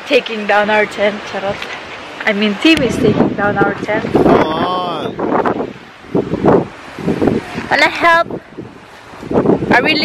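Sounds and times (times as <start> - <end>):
wind on microphone: 0.6 - 10.0.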